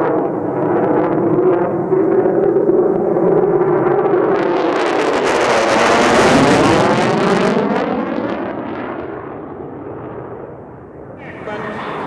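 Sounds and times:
jet roar passing overhead: 0:00.0 - 0:12.0.

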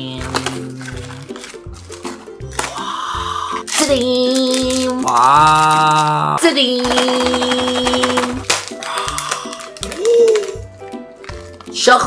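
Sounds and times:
foil wrapper crinkling: 0:00.0 - 0:11.8.

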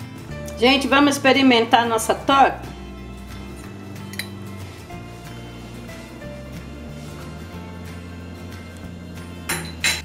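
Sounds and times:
background music: 0:00.0 - 0:10.0
fork clinking on ceramic plate: 0:04.0 - 0:04.4.

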